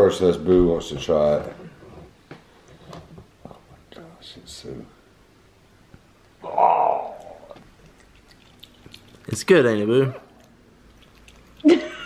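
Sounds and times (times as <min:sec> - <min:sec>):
monkey chewing and lip-smacking: 0:07.0 - 0:11.9.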